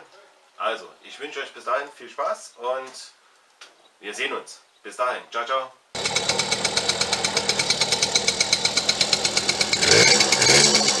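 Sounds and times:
mini-bike engine idling and revving: 0:06.0 - 0:11.0.

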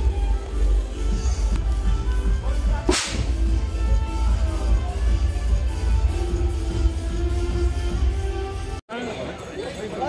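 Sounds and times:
music with heavy bass: 0:00.0 - 0:08.8
confetti cannon blast: 0:02.9 - 0:03.4.

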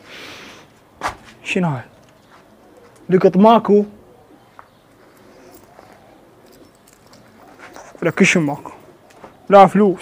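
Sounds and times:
pigeons cooing: 0:01.9 - 0:10.0.

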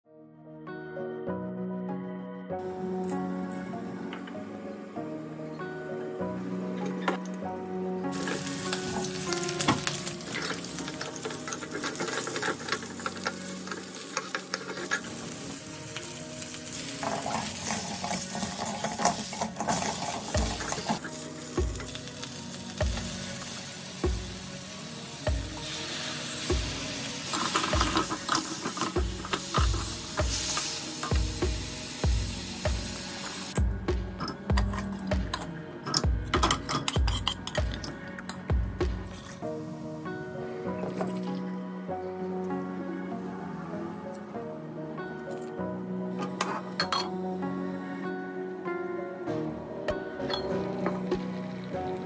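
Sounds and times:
background music with steady beat: 0:00.2 - 0:52.0
meat sizzling in a wok: 0:08.1 - 0:33.6
spatula scraping and clacking on pan: 0:09.8 - 0:15.2.

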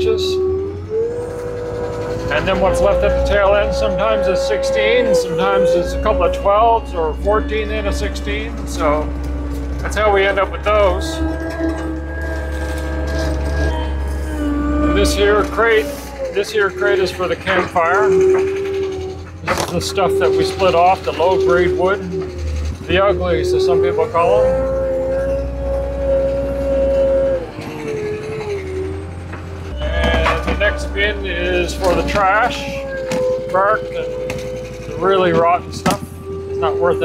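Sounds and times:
loader diesel engine idling: 0:00.0 - 0:37.0.

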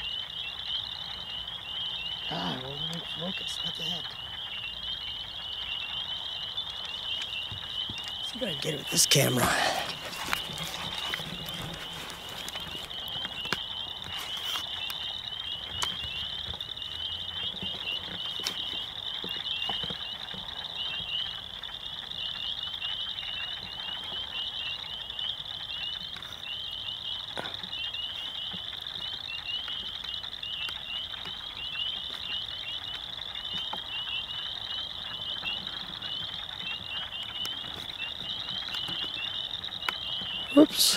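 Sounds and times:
night chorus of chirping creatures: 0:00.0 - 0:40.9.

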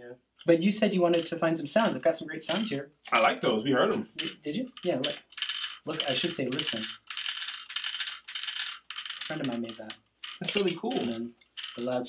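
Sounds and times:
toy beaks clattering on wood paddle: 0:00.3 - 0:02.8, 0:03.6 - 0:12.0.

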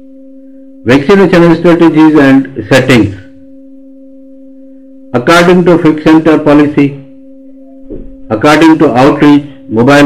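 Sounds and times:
fainter higher tone: 0:00.0 - 0:10.0
steady pure low tone: 0:00.0 - 0:10.0.

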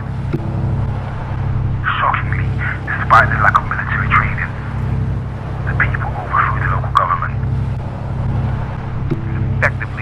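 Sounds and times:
low rumbling drone with flutter: 0:00.0 - 0:10.0.

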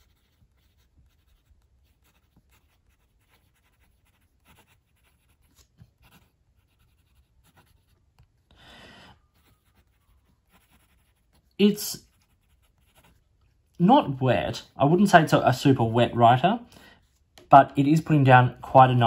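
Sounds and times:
fountain pen scratching on paper: 0:00.0 - 0:08.0, 0:09.3 - 0:13.4.

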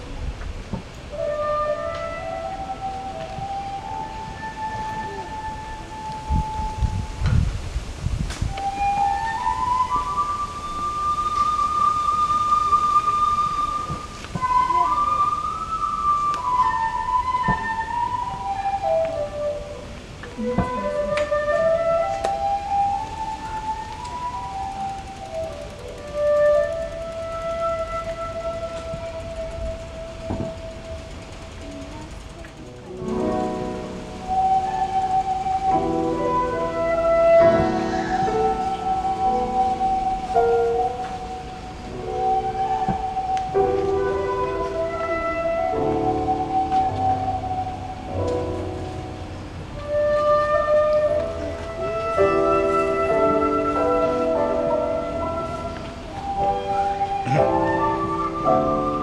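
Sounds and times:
bamboo flute melody: 0:00.0 - 0:59.0.

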